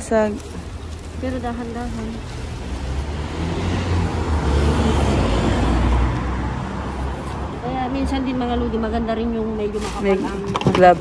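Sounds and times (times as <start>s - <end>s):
plastic bag rustling: 0.0s - 4.3s, 9.4s - 11.0s
car passing: 0.0s - 11.0s.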